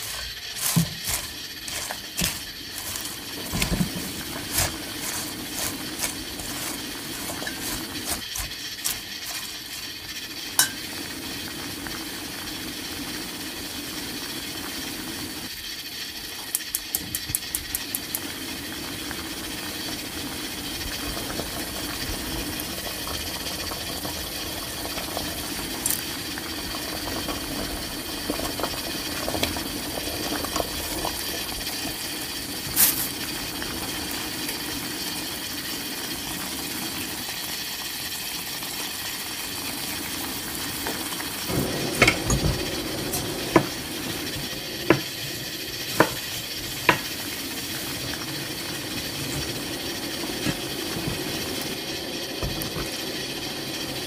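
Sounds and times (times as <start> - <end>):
water boiling and bubbling: 0.0 - 54.0.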